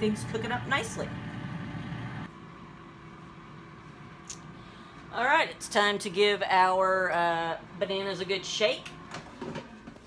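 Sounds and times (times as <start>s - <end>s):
air fryer fan humming: 0.0s - 4.6s.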